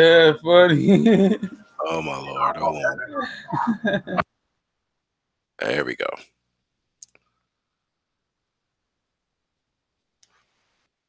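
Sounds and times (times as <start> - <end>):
person speaking: 0.0 - 4.2.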